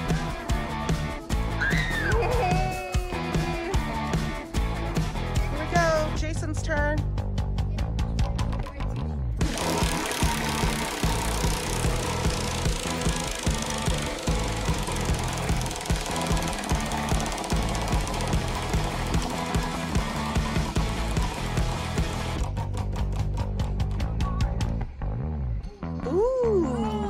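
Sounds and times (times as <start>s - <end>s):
background music: 0.0s - 27.0s
prize wheel clicking rattle: 9.4s - 22.4s.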